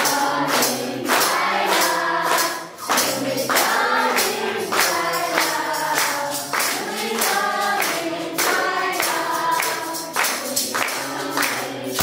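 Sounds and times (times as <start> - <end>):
hand claps: 0.0 - 12.0
jingling percussion: 0.0 - 12.0
women and girls singing: 0.0 - 12.0.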